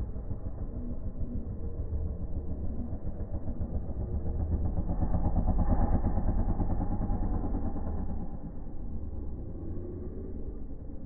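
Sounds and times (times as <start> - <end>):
dirt bike engine running: 0.0 - 11.0.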